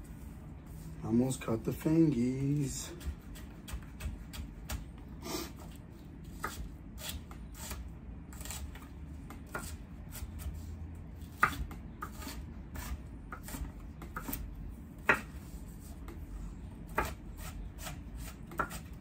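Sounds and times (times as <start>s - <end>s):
knife chopping on wooden board: 2.8s - 5.0s, 6.3s - 7.8s, 8.4s - 10.6s, 11.2s - 16.2s, 16.9s - 19.0s.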